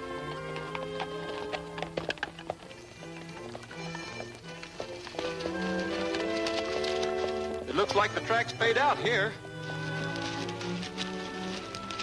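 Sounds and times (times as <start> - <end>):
horse hooves on dirt: 0.0 - 12.0
orchestral film score: 0.0 - 12.0.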